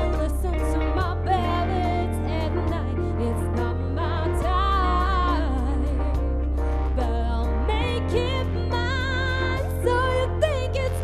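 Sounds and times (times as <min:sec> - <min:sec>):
electric guitar: 0:00.0 - 0:11.0
keyboard: 0:00.0 - 0:11.0
low bass notes: 0:00.0 - 0:11.0
woman singing: 0:00.0 - 0:11.0.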